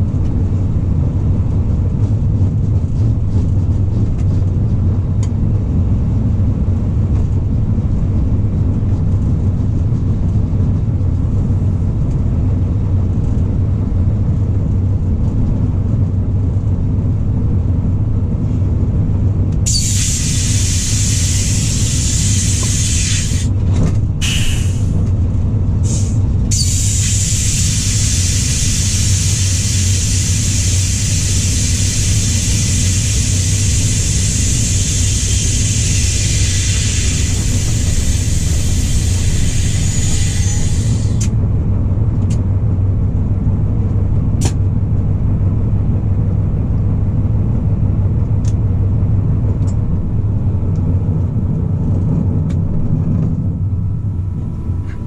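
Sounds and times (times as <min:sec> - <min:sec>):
locomotive engine rumbling: 0:00.0 - 0:55.0
loud steady hiss: 0:19.7 - 0:23.5, 0:25.8 - 0:41.3.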